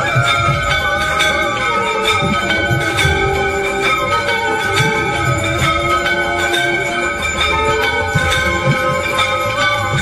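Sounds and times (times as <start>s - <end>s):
devotional music with low beat: 0.0s - 10.0s
temple bells ringing: 0.0s - 10.0s.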